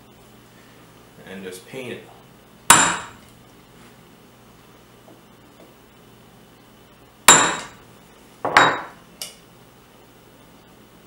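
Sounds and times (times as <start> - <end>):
hammer striking metal punch: 2.7 - 3.2, 7.3 - 7.8, 8.5 - 9.0.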